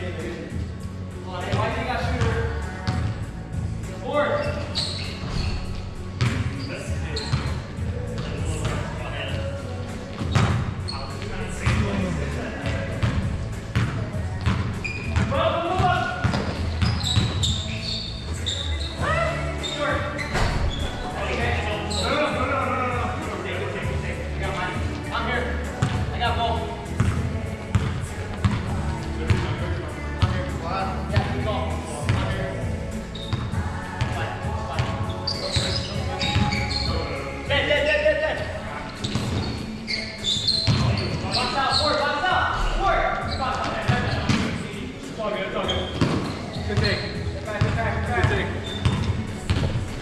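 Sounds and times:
players calling out: 14.4 - 23.3, 23.9 - 44.5.

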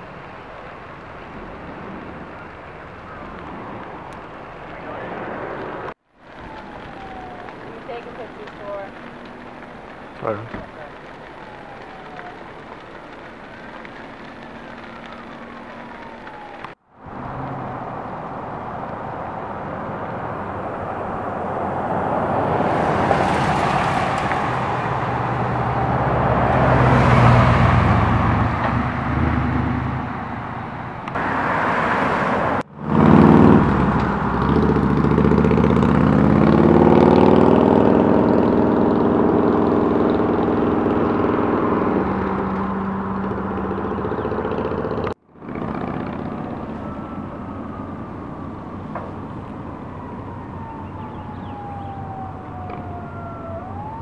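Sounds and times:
vehicles passing close by: 0.0 - 54.0
vehicle engine accelerating: 14.2 - 47.8.

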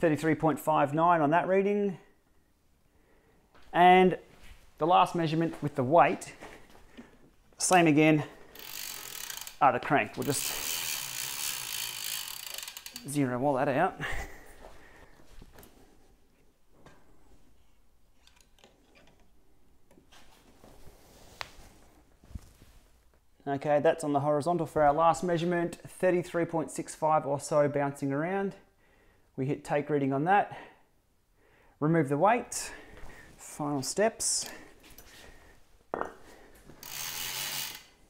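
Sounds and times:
bicycle freewheel ratcheting: 8.5 - 9.6, 10.2 - 13.2, 36.8 - 37.9.

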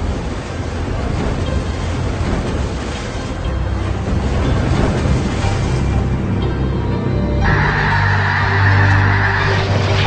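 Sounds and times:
music: 0.0 - 10.0
geese honking: 7.4 - 10.0.

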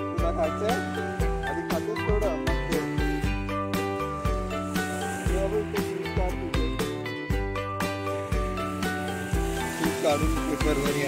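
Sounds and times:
music with steady beat: 0.0 - 11.0
waves washing on pebbles: 4.0 - 6.2, 8.1 - 11.0.

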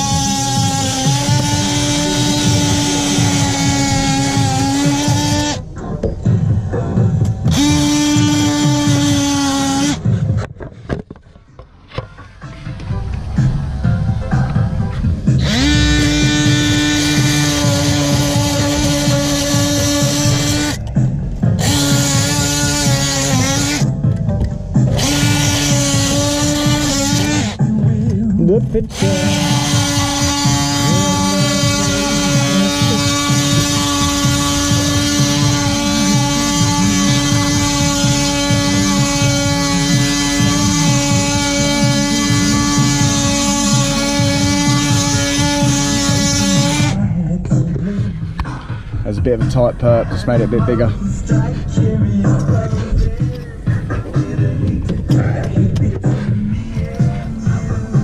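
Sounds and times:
oscillating multi-tool buzzing: 0.0 - 5.6, 7.4 - 10.0, 15.4 - 20.8, 21.6 - 23.9, 24.9 - 27.6, 28.9 - 47.0.

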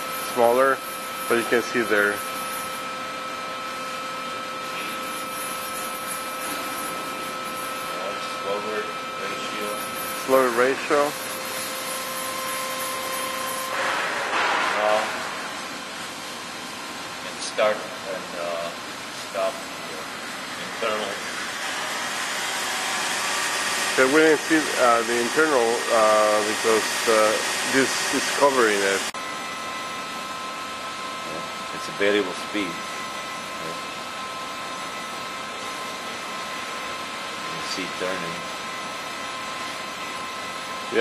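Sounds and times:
grinding spindle whirring: 0.0 - 13.9, 20.7 - 29.1
grinder spindle whirring: 4.8 - 13.9.

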